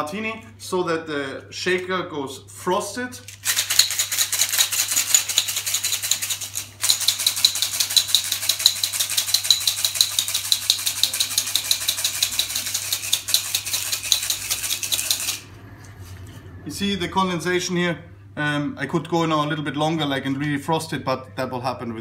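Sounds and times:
ice rattling in metal cocktail shaker: 3.3s - 15.4s.

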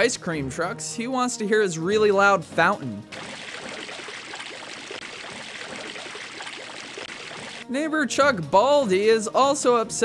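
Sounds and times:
water fountain splashing: 3.1s - 7.7s.

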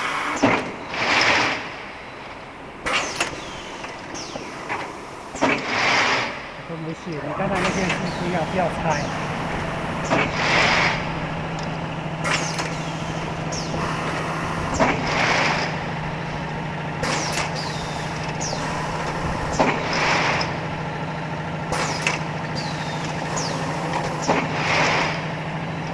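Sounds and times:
machine motor hum: 0.0s - 25.9s
pneumatic actuators clacking: 0.0s - 25.9s.

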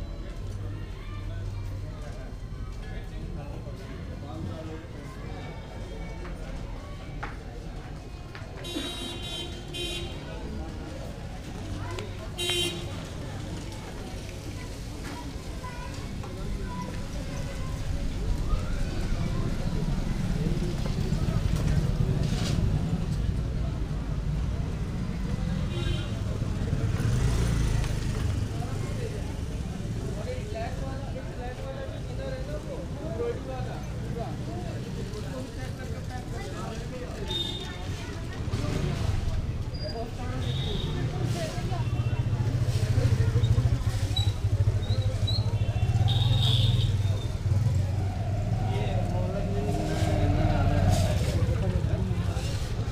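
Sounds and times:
people talking: 0.0s - 52.9s
voices of passers-by: 0.0s - 52.9s.

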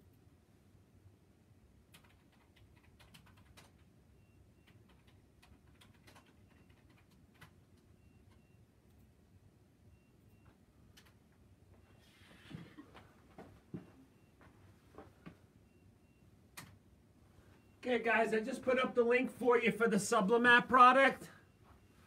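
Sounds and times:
keyboard typing and clicks: 1.9s - 3.9s, 4.6s - 9.0s, 10.4s - 11.2s.

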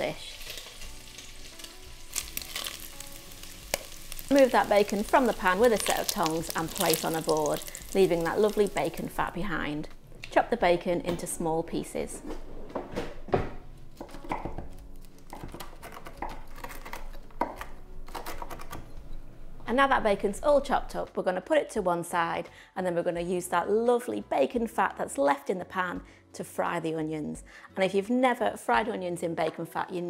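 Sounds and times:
small crackles: 0.0s - 9.4s
bacon sizzling in hot oil: 0.0s - 9.6s
knife chopping on wooden board: 13.4s - 18.5s.

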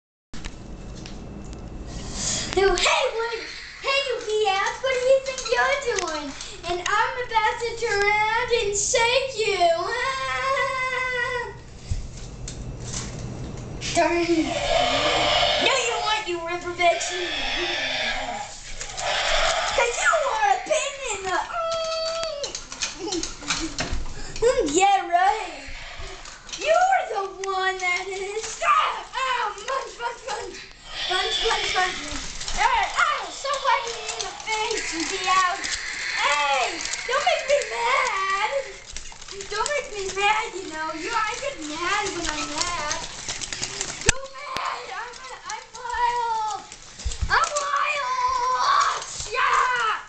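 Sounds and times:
child making monster roars: 2.7s - 4.2s, 14.0s - 22.5s, 25.3s - 26.4s, 30.2s - 38.9s, 47.3s - 50.0s
robot toy electronic calls: 14.3s - 21.2s, 30.6s - 39.0s
plastic and motor clicks: 33.3s - 47.8s.

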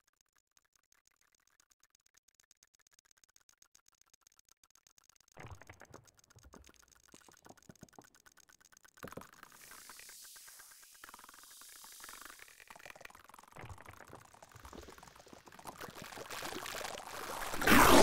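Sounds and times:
fast run of clicks: 0.0s - 17.0s
watery hiss: 9.4s - 13.0s.

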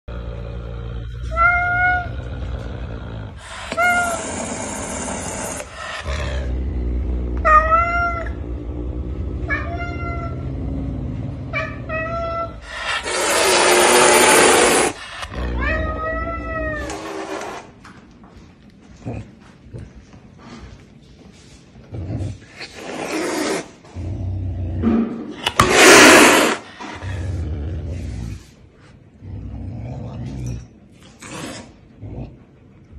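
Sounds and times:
wild cat hissing: 2.1s - 7.0s, 12.6s - 15.7s, 22.3s - 23.9s, 25.4s - 28.4s
cat cries: 3.7s - 4.4s.

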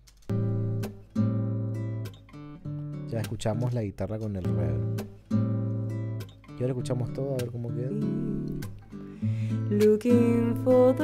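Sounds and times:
strummed acoustic guitar chords: 0.3s - 11.0s.

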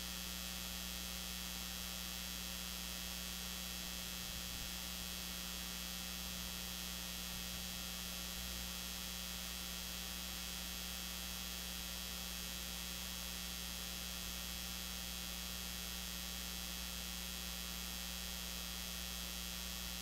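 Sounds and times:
electrical mains hum with hiss: 0.0s - 20.0s.

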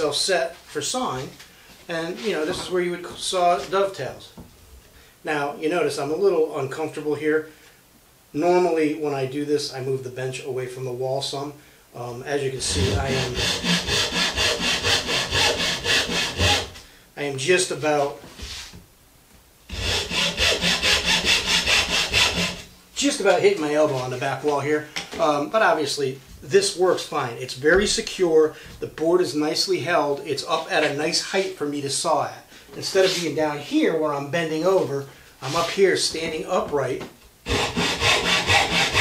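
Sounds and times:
hand saw cutting wood: 12.6s - 16.8s, 19.7s - 22.7s, 37.5s - 39.0s.

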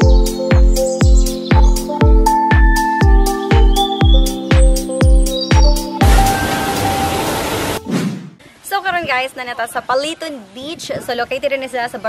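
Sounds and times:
music with beat: 0.0s - 7.4s
waterfall rushing: 6.0s - 7.9s.

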